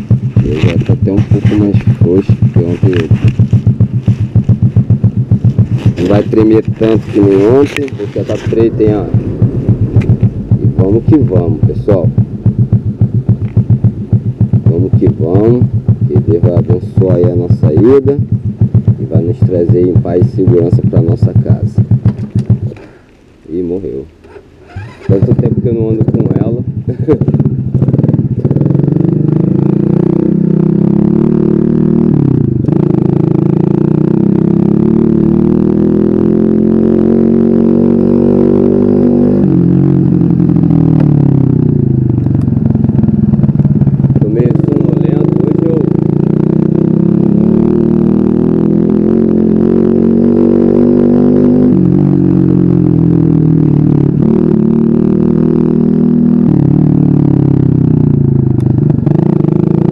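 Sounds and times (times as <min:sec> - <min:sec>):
small motorcycle engine revving: 0:00.0 - 0:23.0, 0:24.2 - 0:59.9.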